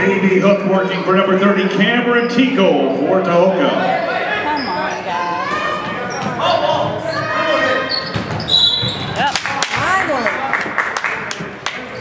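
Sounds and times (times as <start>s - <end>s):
voices echoing in gym: 0.0s - 12.0s
referee's whistle: 7.8s - 9.2s.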